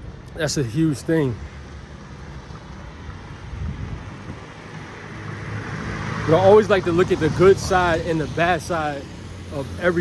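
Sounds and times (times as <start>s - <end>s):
passing vehicles rushing: 0.0s - 10.0s.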